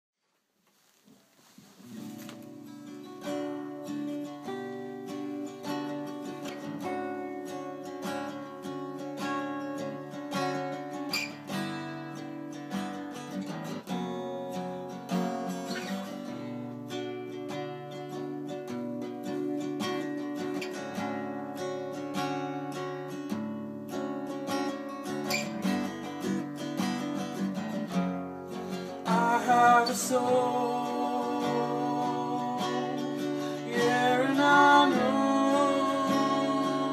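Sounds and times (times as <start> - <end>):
acoustic guitars playing: 1.7 - 36.9
person singing: 28.8 - 36.9.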